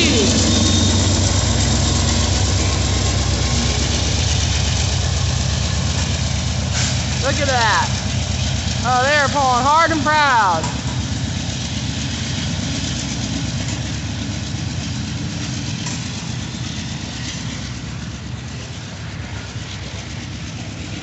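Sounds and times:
diesel locomotives pulling: 0.0 - 21.0
freight train boxcars rumbling: 0.0 - 21.0.

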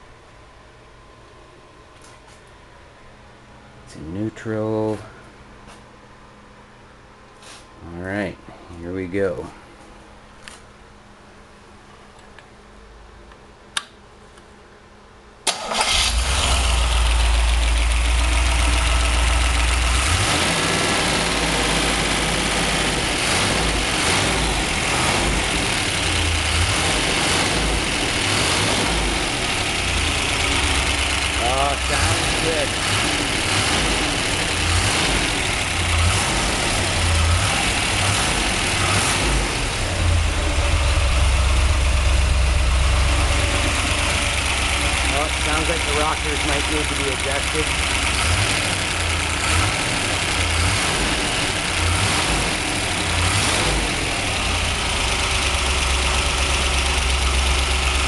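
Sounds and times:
car engine starting and running unevenly: 15.5 - 58.0.

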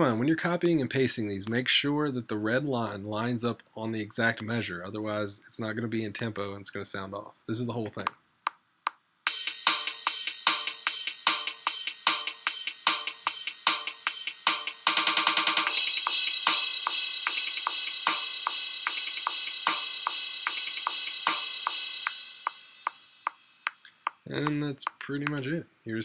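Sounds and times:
crash cymbals ringing: 9.3 - 14.8, 15.7 - 23.6
programmed drum beat: 9.3 - 25.4.

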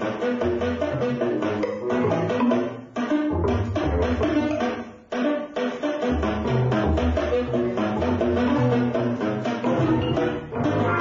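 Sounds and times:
percussive drums: 0.0 - 11.0
low bass notes: 6.1 - 11.0.

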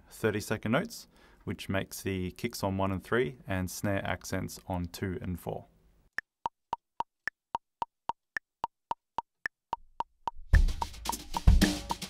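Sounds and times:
metronome clicking: 8.9 - 12.0.

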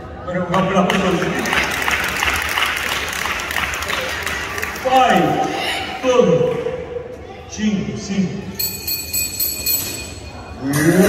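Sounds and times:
hands clapping in a hall: 0.4 - 5.6.

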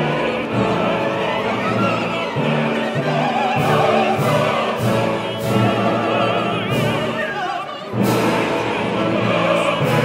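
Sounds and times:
full orchestra: 0.0 - 10.0
male chorus singing: 0.0 - 10.0.

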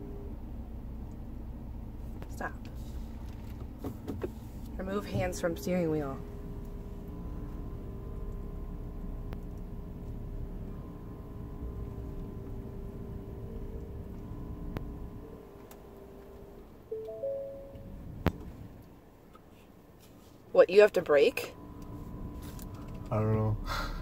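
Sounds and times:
low vehicle rumble: 0.0 - 24.0
steady electronic tone: 16.9 - 18.0
two-note chime: 16.9 - 18.0.

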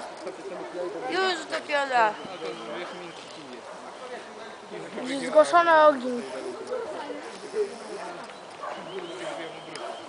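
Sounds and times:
distant people talking: 0.0 - 10.0.

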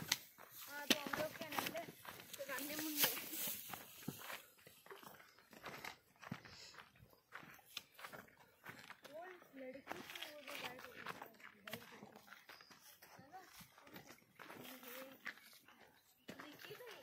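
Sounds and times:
footsteps on dirt trail: 0.0 - 17.0
people talking: 0.7 - 3.6, 9.0 - 12.3, 13.0 - 15.4, 16.3 - 17.0.

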